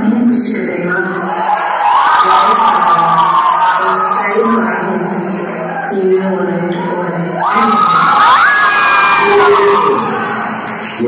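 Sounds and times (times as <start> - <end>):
crowd cheering and whooping: 1.1 - 6.0, 6.7 - 11.0.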